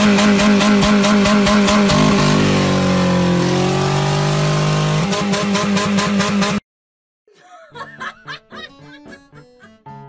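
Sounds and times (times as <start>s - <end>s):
car engine revving: 0.0s - 6.6s.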